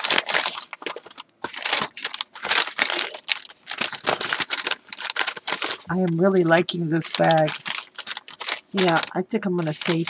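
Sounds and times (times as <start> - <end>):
paper bag crinkling and rustling: 0.0 - 10.0.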